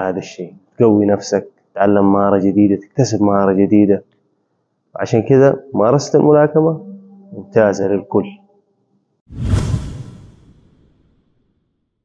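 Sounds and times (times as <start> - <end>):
whoosh with deep rumble: 9.3 - 11.2.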